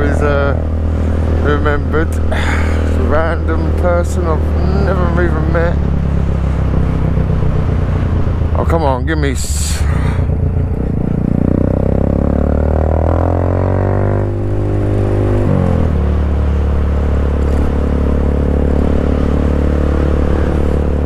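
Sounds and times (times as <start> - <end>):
motorcycle engine while riding: 0.0 - 21.0.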